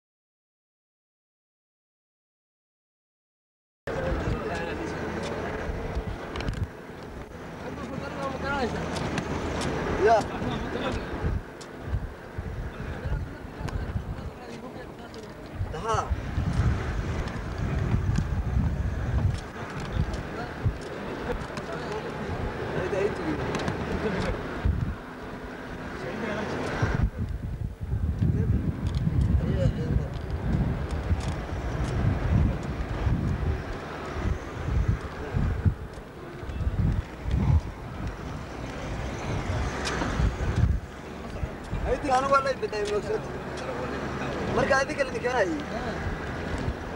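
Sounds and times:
vehicle driving on dirt road: 0:03.9 - 0:46.9
wind buffeting microphone: 0:03.9 - 0:46.9.

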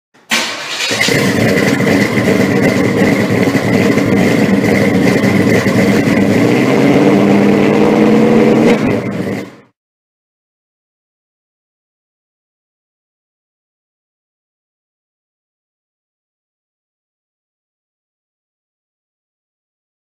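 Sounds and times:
car engine starting and running: 0:00.2 - 0:09.8.

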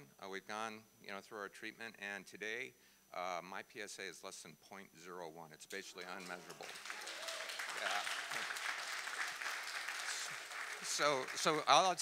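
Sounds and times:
congregation applauding: 0:06.1 - 0:12.0.

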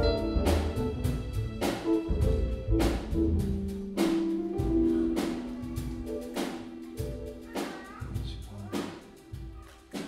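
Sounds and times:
jazz combo playing: 0:00.0 - 0:09.7
drum and cymbal hits: 0:00.0 - 0:10.0.

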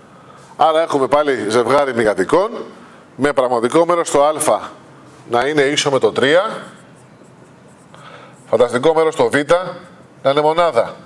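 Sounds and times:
man speaking: 0:00.6 - 0:06.9, 0:08.5 - 0:11.0
marker pen writing on whiteboard: 0:06.1 - 0:10.1.

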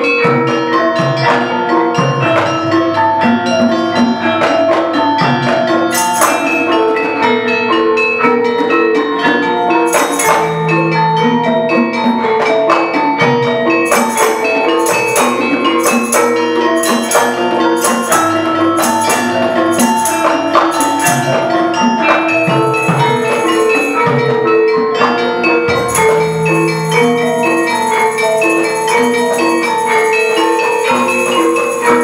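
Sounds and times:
metallophones struck: 0:00.0 - 0:32.0
barrel drum: 0:08.7 - 0:32.0.

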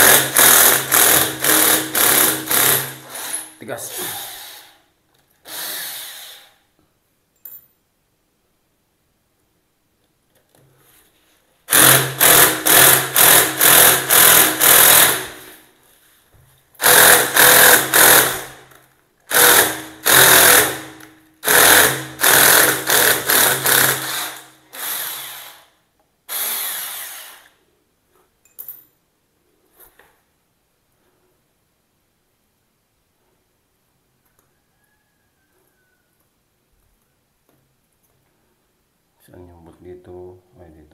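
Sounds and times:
cordless drill bursts: 0:00.0 - 0:04.8, 0:05.4 - 0:06.6, 0:11.7 - 0:15.5, 0:16.8 - 0:18.6, 0:19.3 - 0:25.7, 0:26.3 - 0:27.6.

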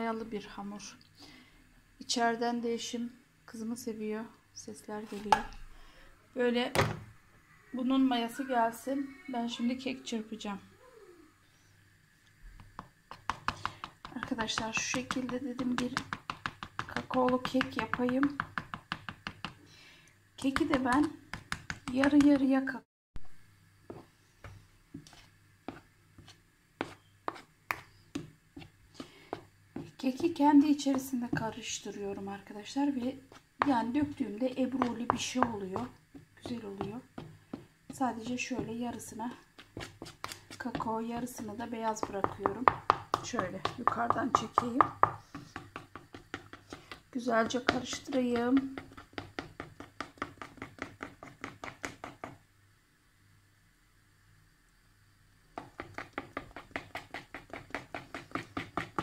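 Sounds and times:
spoon tapping and scraping bowl: 0:12.8 - 0:19.6, 0:33.3 - 0:38.8, 0:39.6 - 0:52.4, 0:55.6 - 0:59.0.

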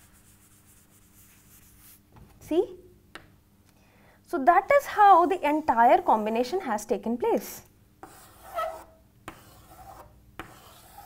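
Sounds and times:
chalk scraping on chalkboard: 0:00.0 - 0:02.0, 0:08.0 - 0:11.0
chalk tapping on board: 0:08.0 - 0:11.0.

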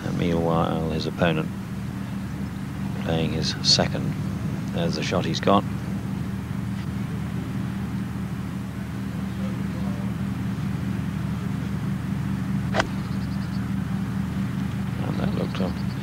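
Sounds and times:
steady low hum: 0:00.0 - 0:16.0
golf club striking ball: 0:12.7 - 0:13.2.

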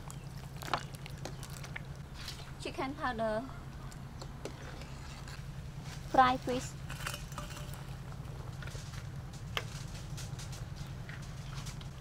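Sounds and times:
soup bubbling in a pot: 0:00.0 - 0:02.2
steady low hum: 0:00.0 - 0:12.0.

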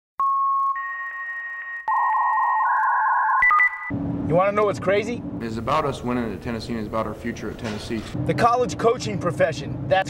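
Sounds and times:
synthesized beep tones: 0:00.2 - 0:03.9.

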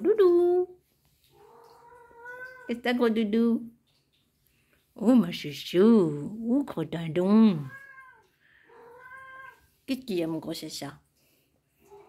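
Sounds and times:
cat meowing: 0:01.4 - 0:02.7, 0:07.6 - 0:09.6.

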